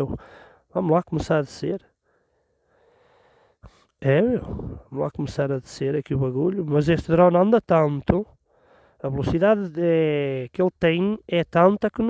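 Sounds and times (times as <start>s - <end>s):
soft breath: 0.2s - 0.7s, 2.0s - 4.9s, 8.4s - 9.0s.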